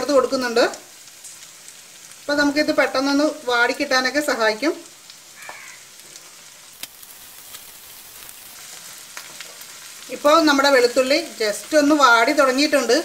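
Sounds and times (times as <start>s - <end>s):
garlic sizzling in a pan: 0.0s - 13.0s.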